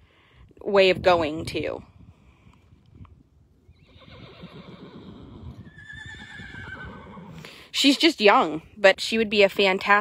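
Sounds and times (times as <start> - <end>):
horse whinnying: 3.8 - 7.6.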